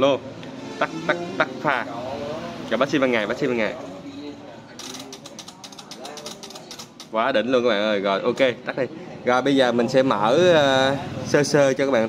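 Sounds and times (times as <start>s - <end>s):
faint voices: 0.8s - 7.3s.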